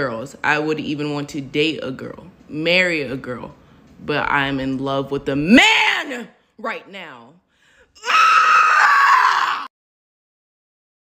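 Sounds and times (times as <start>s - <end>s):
person screaming: 8.0s - 9.7s.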